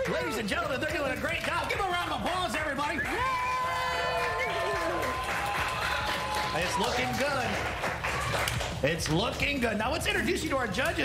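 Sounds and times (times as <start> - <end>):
audience clapping: 0.0 - 11.0.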